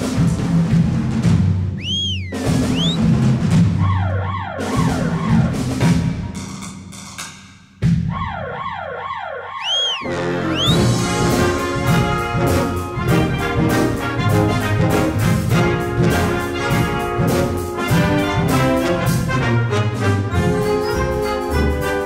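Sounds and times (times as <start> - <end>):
concert band playing: 0.0 - 6.8, 9.6 - 22.0
siren-like glides: 3.8 - 5.7, 8.1 - 10.9
low brass and timpani ostinato: 10.0 - 22.0.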